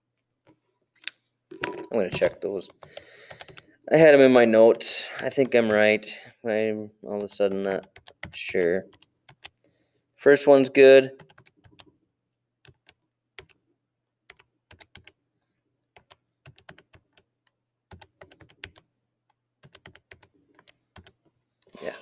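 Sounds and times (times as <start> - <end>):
faint keyboard typing: 2.2 - 3.7, 7.2 - 9.7, 11.2 - 11.9, 12.6 - 13.6, 14.3 - 15.2, 15.9 - 21.8.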